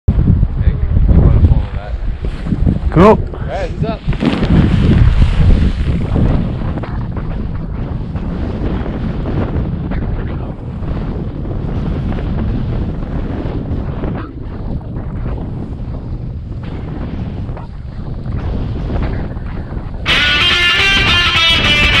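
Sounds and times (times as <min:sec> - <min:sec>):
wind buffeting microphone: 0:00.1 - 0:22.0
snowboard rushing through snow: 0:03.5 - 0:09.6.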